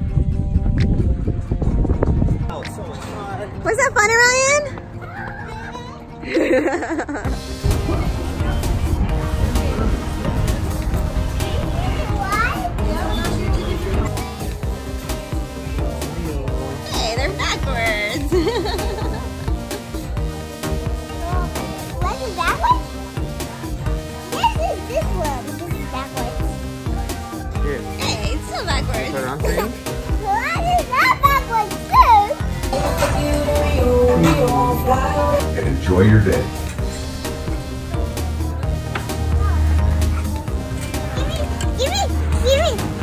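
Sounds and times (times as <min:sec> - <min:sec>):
background music: 0:00.0 - 0:43.0.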